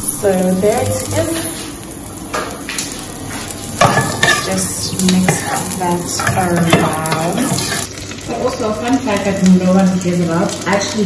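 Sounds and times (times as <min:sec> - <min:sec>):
onions sizzling in hot oil: 0:00.0 - 0:11.0.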